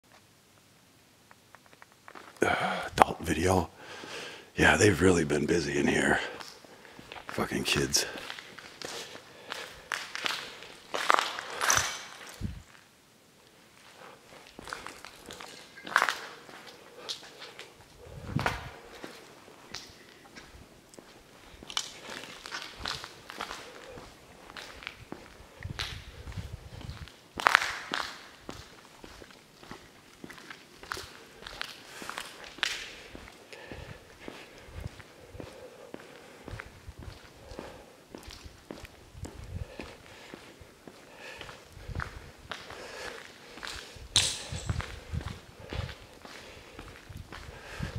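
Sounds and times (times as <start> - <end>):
footsteps on debris-strewn tiles: 1.3 - 2.4, 6.4 - 7.4, 8.0 - 12.9, 13.8 - 47.9.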